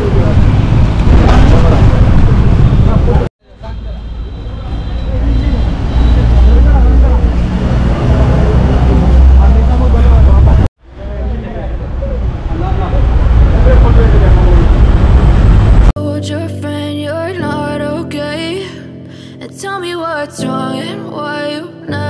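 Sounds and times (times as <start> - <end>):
heavy low rumble: 0.0 - 3.3, 5.1 - 16.0.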